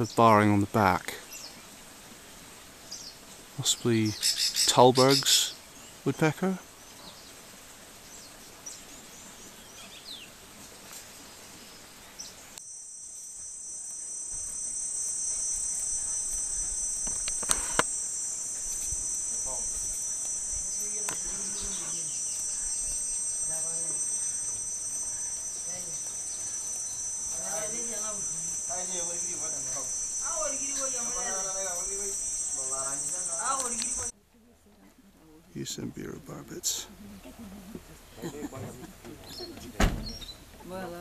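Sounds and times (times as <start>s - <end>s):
faint bird calls: 4.0s - 6.1s, 18.9s - 34.1s
insect chorus drone: 11.8s - 34.2s.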